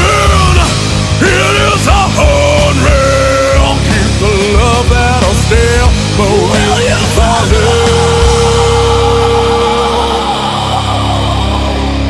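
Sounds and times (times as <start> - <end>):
heavy rock with distorted guitars: 0.0 - 12.0.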